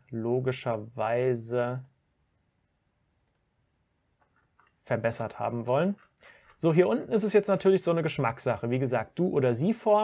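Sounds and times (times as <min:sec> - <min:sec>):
man speaking: 0:00.0 - 0:01.9, 0:04.8 - 0:06.0, 0:06.6 - 0:10.0
computer mouse clicks: 0:03.2 - 0:03.5, 0:04.2 - 0:04.8.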